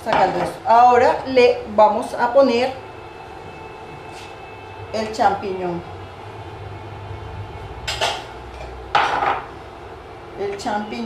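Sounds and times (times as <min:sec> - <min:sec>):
kitchenware clattering against pot: 0:07.9 - 0:09.5.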